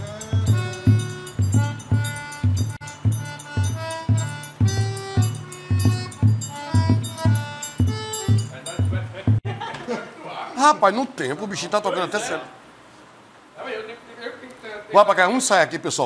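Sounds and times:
bright metal percussion: 0.0s - 9.4s
melody of held notes: 0.0s - 9.4s
bass drum beats: 0.0s - 9.5s.

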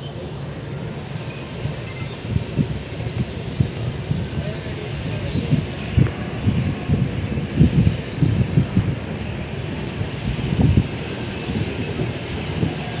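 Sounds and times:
train rumbling: 0.0s - 13.0s.

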